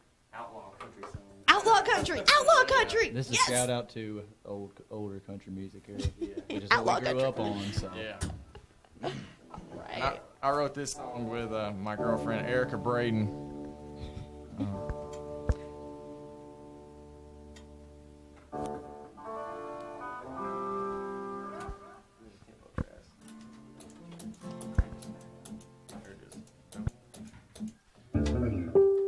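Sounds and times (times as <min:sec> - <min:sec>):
guitar chords ringing: 0:11.1 - 0:22.0, 0:28.2 - 0:29.0
light taps and clicks: 0:22.8 - 0:27.8.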